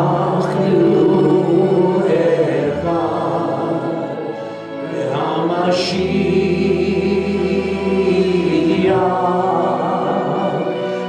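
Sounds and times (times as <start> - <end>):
group singing worship song: 0.0 - 11.0
keyboard accompaniment: 0.0 - 11.0.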